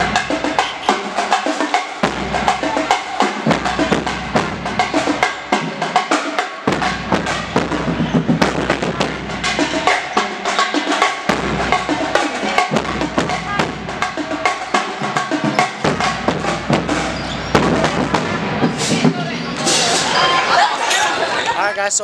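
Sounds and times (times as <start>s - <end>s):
band playing drum-heavy music: 0.0s - 21.4s
bass drum and snare hits: 2.0s - 6.0s, 6.6s - 20.1s.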